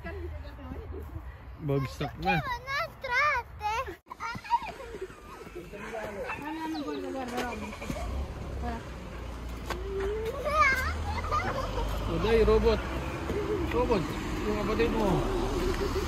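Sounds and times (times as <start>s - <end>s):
children talking: 0.0s - 16.0s.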